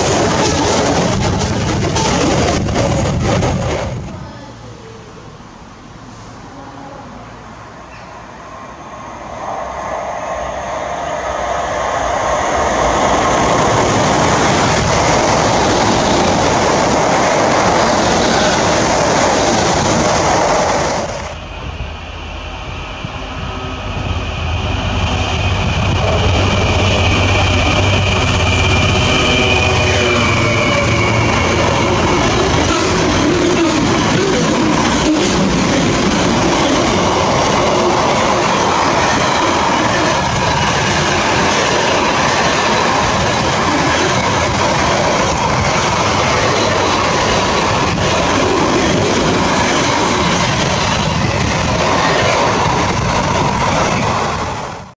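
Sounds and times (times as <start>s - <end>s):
wagons rumbling over rails: 0.0s - 5.6s, 6.4s - 54.9s
locomotive drone and whine: 6.4s - 54.9s.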